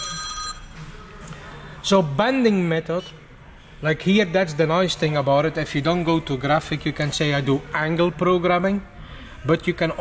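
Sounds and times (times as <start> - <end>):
electronic ringing tone: 0.0 - 0.8.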